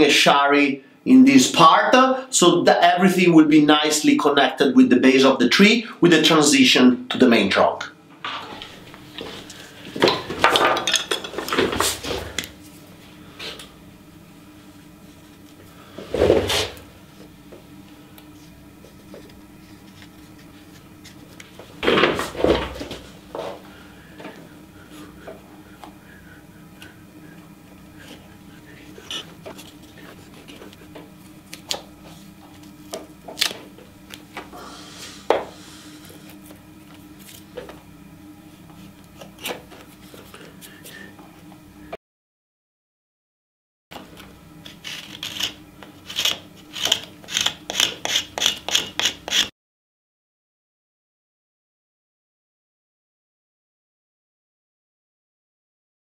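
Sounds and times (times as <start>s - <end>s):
carving tool scraping wood: 18.9s - 21.4s, 28.0s - 30.8s, 44.6s - 49.5s
marker scratching on bark: 44.7s - 49.5s.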